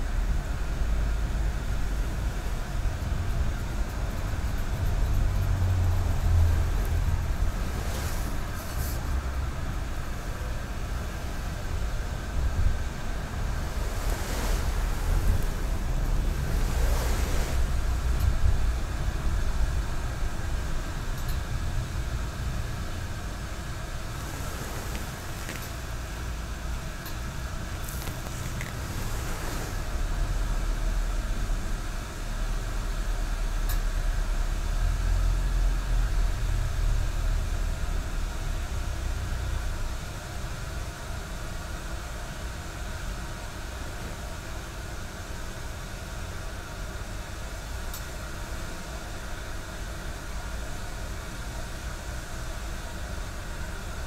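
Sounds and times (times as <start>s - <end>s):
steady low rumble: 0.0s - 33.2s.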